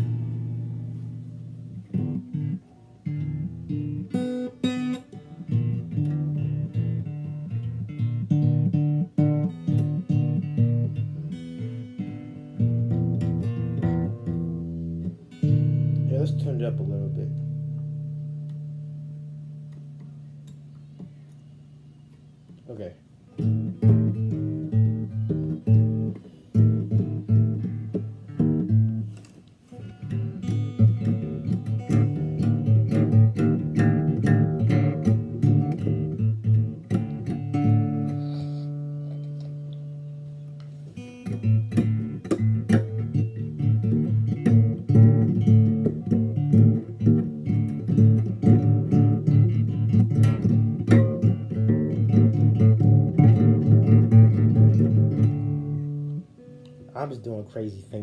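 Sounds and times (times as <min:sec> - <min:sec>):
acoustic guitar plucked notes: 0:00.0 - 0:21.2, 0:23.3 - 0:58.0.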